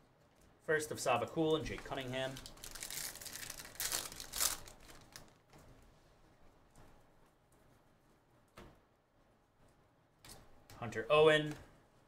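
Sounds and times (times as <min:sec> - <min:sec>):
plastic wrapper tearing and crinkling: 0:01.9 - 0:05.4.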